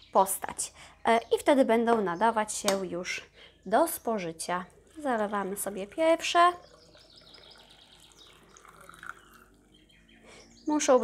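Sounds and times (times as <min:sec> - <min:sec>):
liquid trickling into jar: 0:04.4 - 0:10.2.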